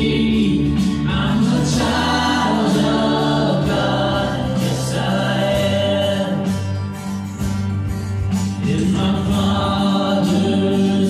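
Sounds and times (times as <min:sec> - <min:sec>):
voices singing together: 0:00.0 - 0:06.9, 0:08.6 - 0:11.0
acoustic guitar: 0:00.0 - 0:11.0
bass guitar: 0:00.0 - 0:11.0.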